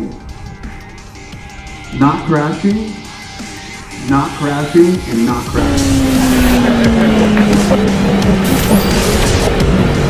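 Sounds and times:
music: 0.0s - 10.0s
motorcycle engine revs dropping: 5.5s - 9.7s.

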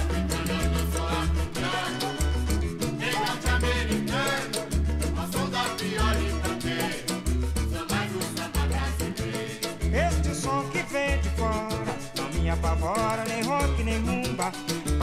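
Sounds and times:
plucked strings: 0.0s - 7.8s
busy hand percussion: 0.0s - 15.0s.

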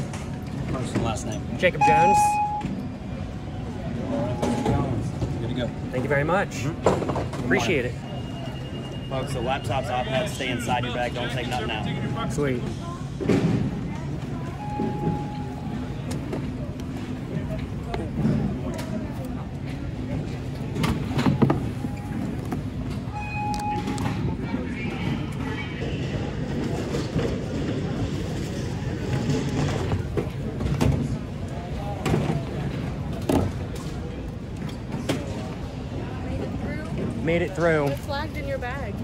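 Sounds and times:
short electronic beep: 1.7s - 2.8s.

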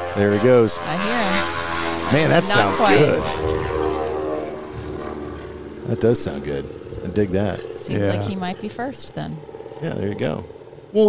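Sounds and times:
propeller plane engines droning: 0.0s - 11.0s.

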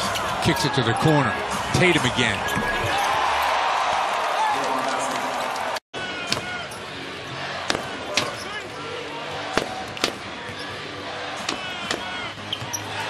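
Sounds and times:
arena crowd murmur: 0.0s - 13.0s
sneakers squeaking on floor: 2.4s - 3.2s, 7.7s - 8.8s, 9.6s - 10.9s, 11.5s - 13.0s.

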